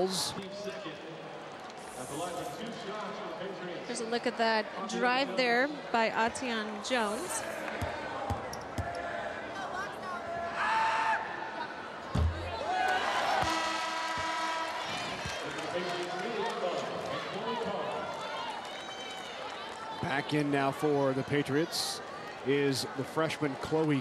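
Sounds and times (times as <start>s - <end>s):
crowd voices: 0.0s - 24.0s.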